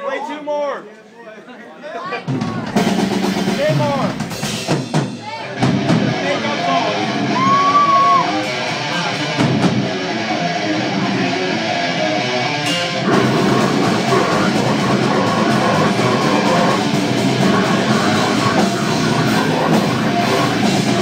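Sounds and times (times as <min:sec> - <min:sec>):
heavy metal band playing: 0:02.3 - 0:21.0.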